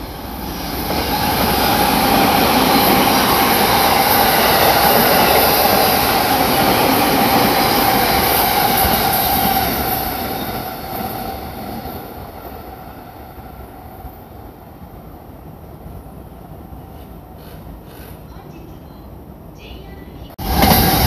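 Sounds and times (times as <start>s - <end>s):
train wheels on rails: 0.0s - 19.0s, 20.0s - 21.0s.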